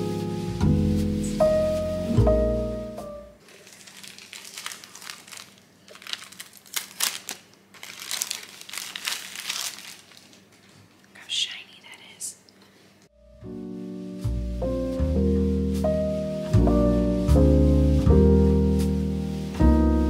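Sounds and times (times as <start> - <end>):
plastic packaging crinkling: 3.4 - 10.8.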